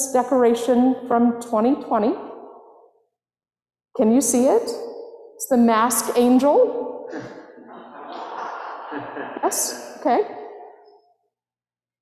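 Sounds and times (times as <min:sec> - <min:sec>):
woman saying okay with echo: 0:09.4 - 0:10.3.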